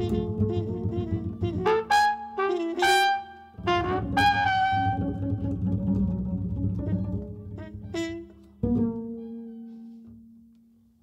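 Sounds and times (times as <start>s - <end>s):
plucked double bass note: 0.0s - 1.7s, 3.6s - 9.5s.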